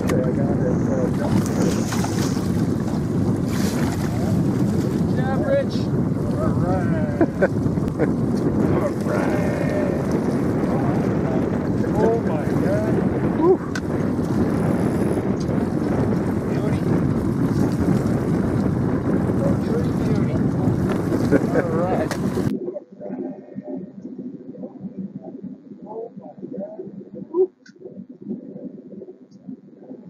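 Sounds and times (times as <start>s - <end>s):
wind rushing over microphone: 0.0s - 30.0s
faint voices: 8.6s - 17.8s, 19.3s - 30.0s.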